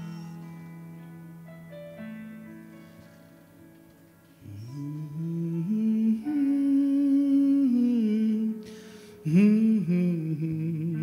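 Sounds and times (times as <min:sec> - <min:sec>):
man singing slow melody: 0:04.4 - 0:11.0.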